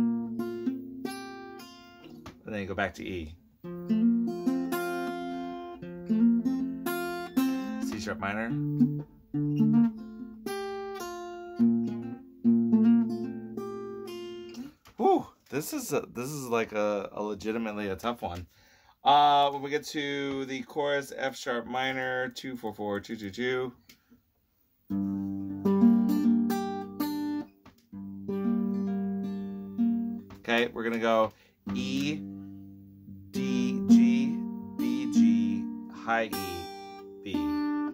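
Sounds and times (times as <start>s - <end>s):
acoustic guitar chords: 0.0s - 14.8s, 24.9s - 37.9s.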